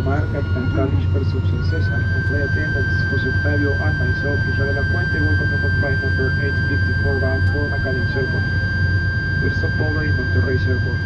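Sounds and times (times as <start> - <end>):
aircraft cabin drone: 0.0 - 11.0
high-pitched whine: 0.0 - 11.0.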